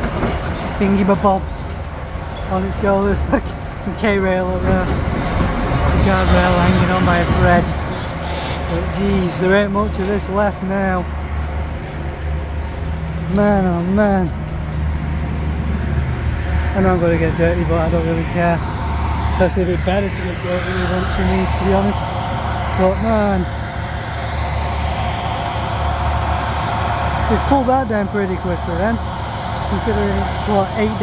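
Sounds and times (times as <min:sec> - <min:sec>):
excavator diesel engines rumbling: 0:00.0 - 0:31.0.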